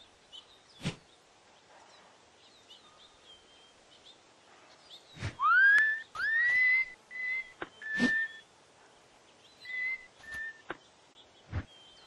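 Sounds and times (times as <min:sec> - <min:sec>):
cartoon character whistling: 0:05.4 - 0:08.4.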